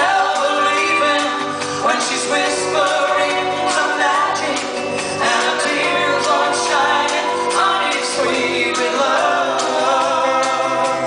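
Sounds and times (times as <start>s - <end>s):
pop band playing a soft ballad: 0.0s - 11.0s.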